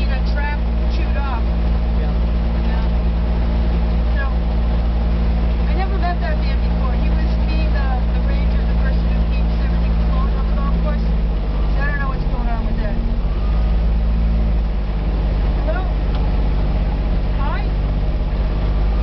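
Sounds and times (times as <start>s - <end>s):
utility vehicle engine droning: 0.0s - 19.0s.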